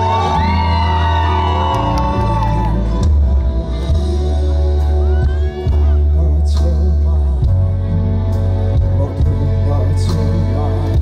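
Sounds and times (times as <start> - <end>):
live band playing pop ballad: 0.0 - 11.0
person singing: 0.0 - 11.0.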